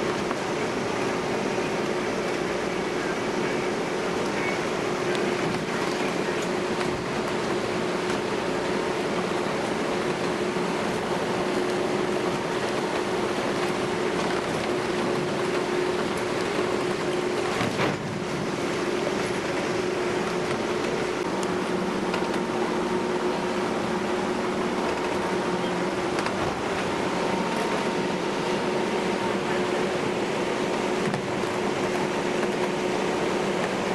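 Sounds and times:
ferry engine and hull drone: 0.0s - 33.9s.

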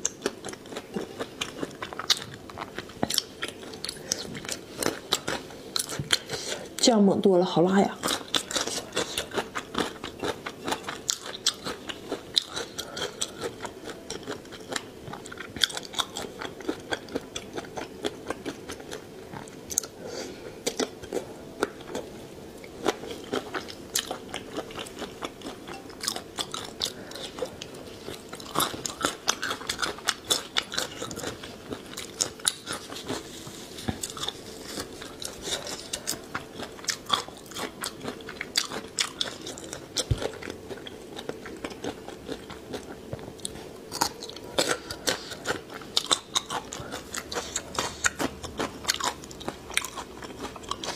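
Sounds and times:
wet chewing with crunches: 0.0s - 7.0s, 7.9s - 20.0s, 20.6s - 50.9s.

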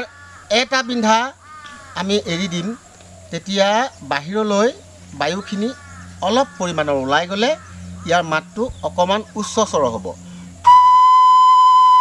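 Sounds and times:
clay whistle high note: 10.6s - 12.0s.

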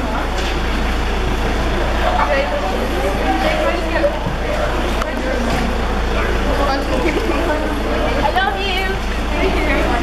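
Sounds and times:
car idling: 0.0s - 10.0s
people chattering: 0.0s - 10.0s.

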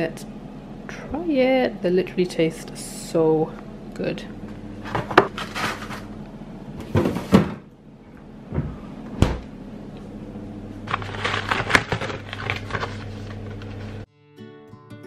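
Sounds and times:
low steady hum: 0.0s - 14.1s.

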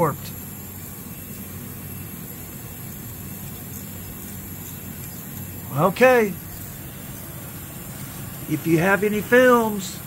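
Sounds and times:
film scanner humming: 0.0s - 10.0s.

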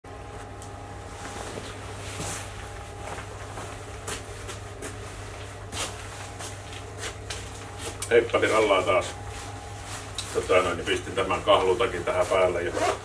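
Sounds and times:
steady low hum: 0.1s - 13.0s
footsteps on concrete: 3.0s - 5.0s.

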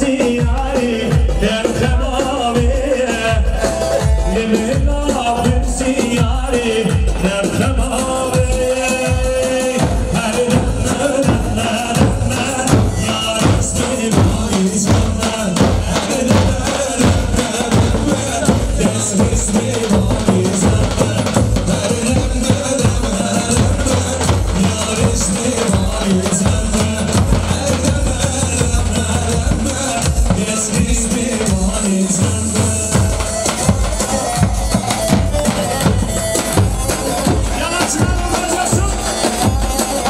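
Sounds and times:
bass drums beating: 0.0s - 40.0s
continuous melody: 0.0s - 40.0s
reedy wind instrument melody: 32.1s - 40.0s.

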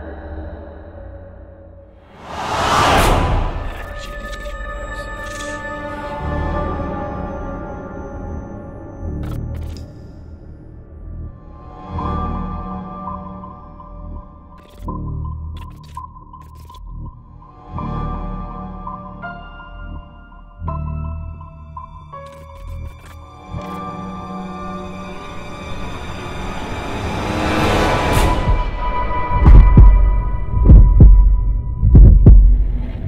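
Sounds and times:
low drone: 0.0s - 14.5s
heartbeat thumps: 29.4s - 32.8s.

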